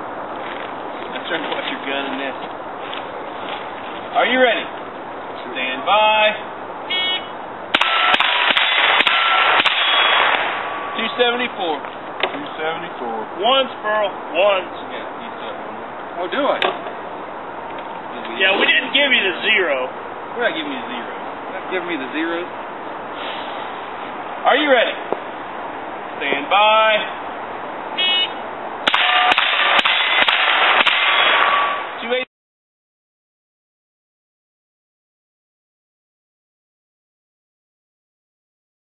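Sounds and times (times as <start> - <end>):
rifle shots: 7.7 - 11.2, 28.8 - 32.0
steel targets ringing: 7.7 - 11.4, 28.8 - 32.0
rapid gunshots: 7.8 - 10.8, 28.9 - 31.8.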